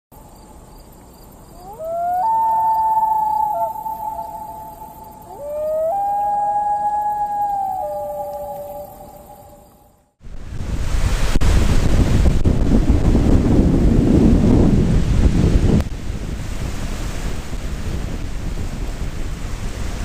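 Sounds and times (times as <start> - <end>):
long wailing animal calls: 1.5 - 10.0.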